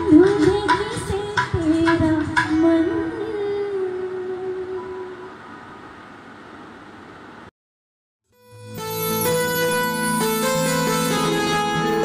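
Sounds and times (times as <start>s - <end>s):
backing music: 8.4s - 12.0s.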